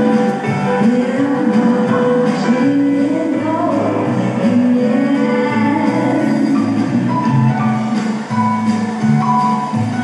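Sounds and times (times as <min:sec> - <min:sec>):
bass notes: 0:00.0 - 0:10.0
guitar: 0:00.0 - 0:10.0
live band playing: 0:00.0 - 0:10.0.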